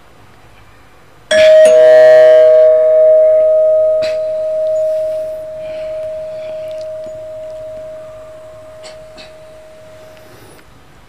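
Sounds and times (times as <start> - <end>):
two-tone ding-dong chime: 1.3 - 10.6.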